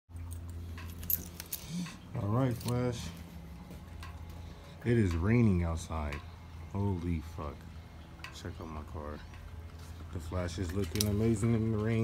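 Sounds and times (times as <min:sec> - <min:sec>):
low steady hum: 0:00.1 - 0:12.0
keys jangling: 0:00.2 - 0:03.1.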